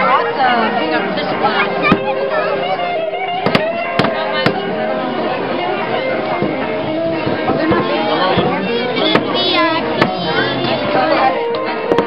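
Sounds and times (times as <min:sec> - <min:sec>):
crowd chatter: 0:00.0 - 0:12.0
music: 0:00.0 - 0:12.0
fish being clubbed knocks: 0:03.4 - 0:04.6.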